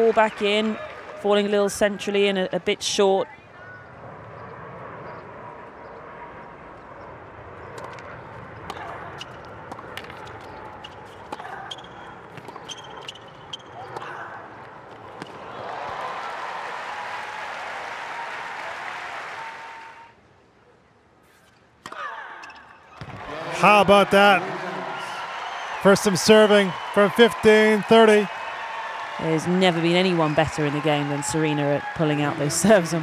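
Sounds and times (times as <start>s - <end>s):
crowd cheering and applause: 0.0s - 1.3s, 15.3s - 20.1s, 23.0s - 33.0s
tennis ball bouncing: 14.9s - 15.4s
crowd murmur: 23.2s - 28.3s.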